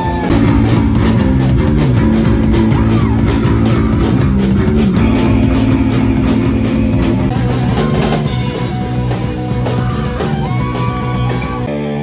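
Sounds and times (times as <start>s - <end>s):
drum kit: 0.0s - 12.0s
electric guitar chords: 0.0s - 12.0s
rock band playing loudly: 0.0s - 12.0s.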